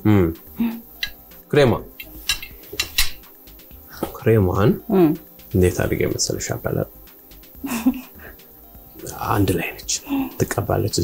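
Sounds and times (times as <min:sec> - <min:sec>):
cutlery clinking on plates: 0:02.0 - 0:03.2.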